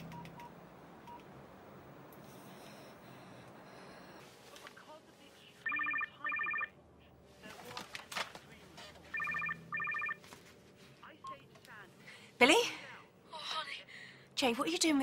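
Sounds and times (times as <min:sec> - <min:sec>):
mobile phone ringing: 0:05.6 - 0:06.8, 0:09.1 - 0:10.3.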